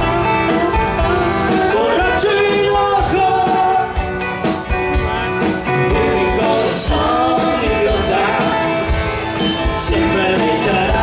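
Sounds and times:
person singing: 0.0s - 4.2s, 5.1s - 11.0s
rock band playing: 0.0s - 11.0s.

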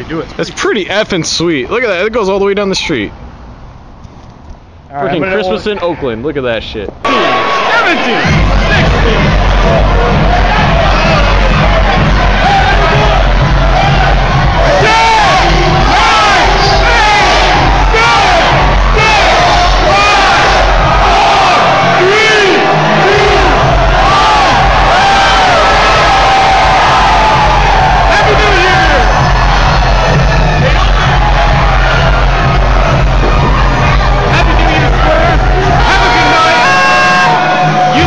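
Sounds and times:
crowd shouting and cheering: 7.0s - 38.0s
loud music with heavy bass beat: 8.1s - 38.0s.

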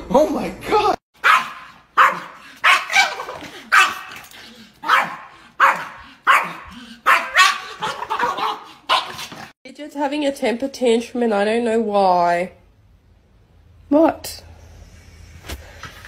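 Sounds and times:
small dog barking: 1.2s - 4.2s, 4.8s - 9.3s.

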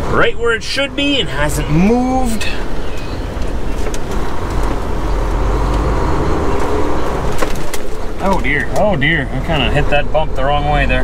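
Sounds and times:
diesel truck engine rumble: 0.0s - 11.0s.

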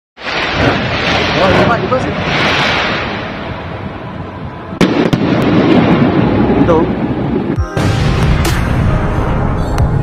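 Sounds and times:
quick sharp firework reports: 0.2s - 3.4s
fireworks rushing noise: 0.2s - 10.0s
firework bang: 4.8s - 6.6s, 7.8s - 9.8s.

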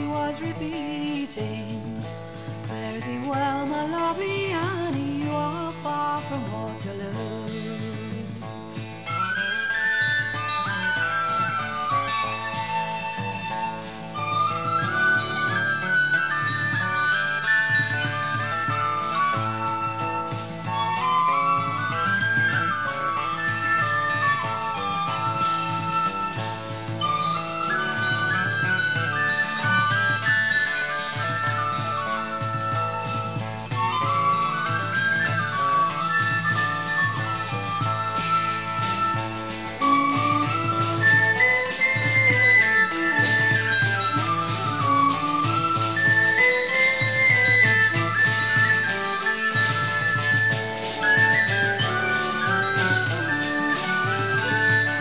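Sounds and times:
wind instrument melody: 7.8s - 55.0s
pulsing accompaniment: 7.9s - 55.0s.

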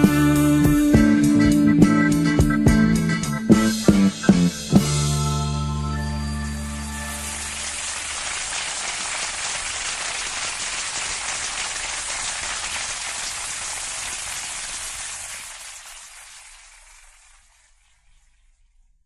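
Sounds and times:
audience applause: 6.8s - 17.8s.

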